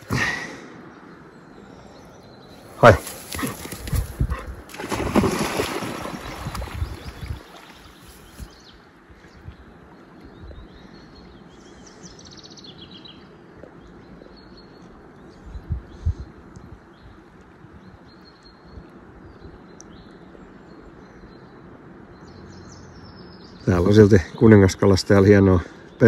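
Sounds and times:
water sloshing: 3.2s - 8.5s
dog crashing through grass: 4.7s - 6.7s
dog splashing into water: 4.7s - 8.0s.

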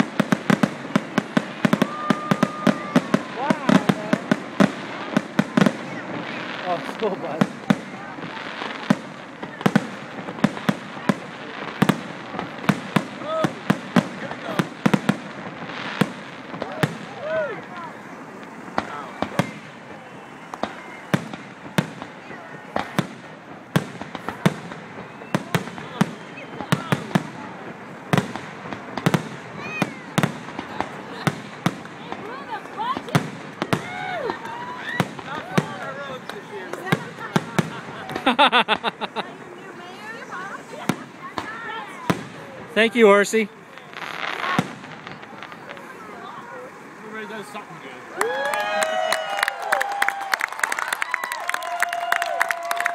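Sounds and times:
fireworks bangs and cracks: 0.0s - 52.9s.

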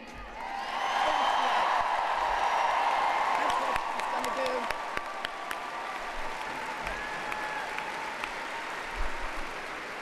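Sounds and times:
crowd applauding: 0.4s - 10.0s.

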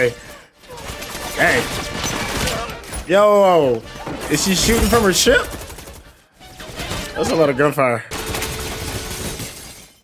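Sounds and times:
glass shattering: 8.4s - 10.0s.

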